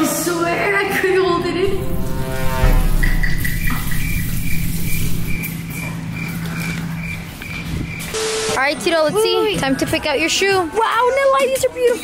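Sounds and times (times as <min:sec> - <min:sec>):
low hum: 0:01.4 - 0:06.2.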